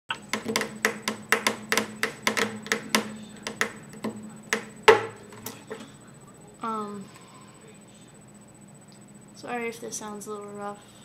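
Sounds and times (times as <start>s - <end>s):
percussive taps on acoustic guitar: 0.1s - 5.5s.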